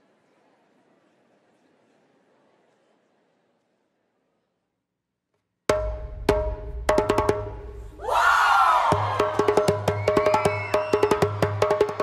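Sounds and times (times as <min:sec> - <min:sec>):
drum troupe playing: 0:05.7 - 0:07.9, 0:08.7 - 0:12.0.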